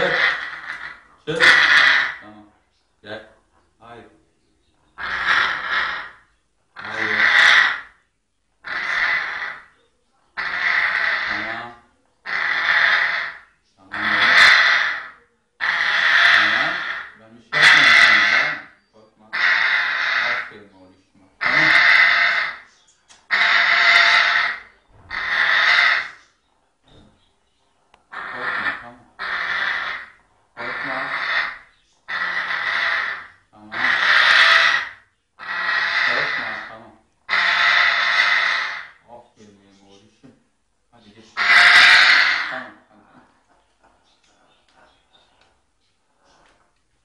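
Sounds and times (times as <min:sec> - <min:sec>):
parrot rasping calls: 0:00.0 - 0:02.3, 0:05.0 - 0:08.0, 0:08.6 - 0:09.8, 0:10.4 - 0:20.6, 0:21.4 - 0:26.4, 0:28.0 - 0:39.1, 0:41.3 - 0:42.9.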